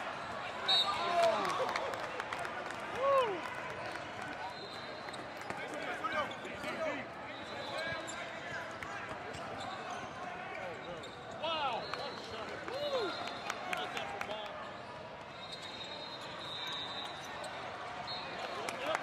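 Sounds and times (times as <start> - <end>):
spectators' voices in a hall: 0.0 - 19.0.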